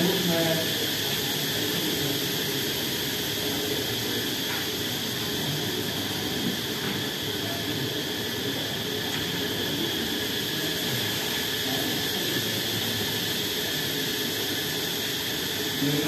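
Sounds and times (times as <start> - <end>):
hissing room noise: 0.0 - 16.0.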